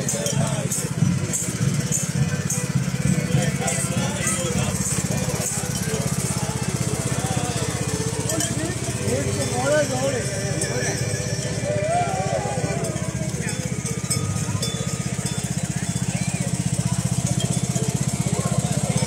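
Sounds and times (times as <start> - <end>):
lawn mower engine running: 0.0 - 19.0
people talking: 0.0 - 19.0.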